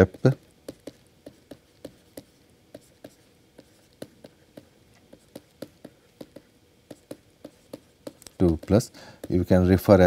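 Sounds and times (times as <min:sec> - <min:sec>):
stylus tapping on tablet: 0:00.0 - 0:09.5.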